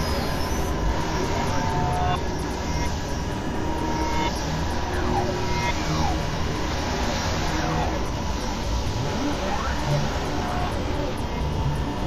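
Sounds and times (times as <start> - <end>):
droning synthesizer noise: 0.0 - 12.0.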